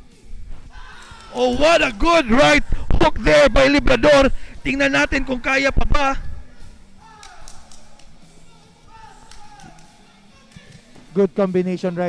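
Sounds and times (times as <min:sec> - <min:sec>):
distant voices in a large room: 0:00.0 - 0:12.0.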